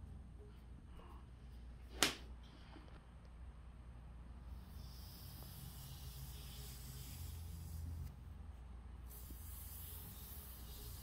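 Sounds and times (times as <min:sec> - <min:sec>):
foam brush hissing on wood: 0:04.6 - 0:08.1, 0:09.1 - 0:11.0.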